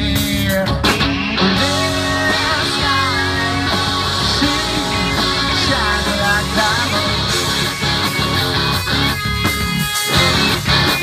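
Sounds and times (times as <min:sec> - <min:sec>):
bass guitar: 0:00.0 - 0:11.0
drums: 0:00.0 - 0:11.0
electric guitar chords: 0:00.0 - 0:11.0
rock band playing: 0:00.0 - 0:11.0.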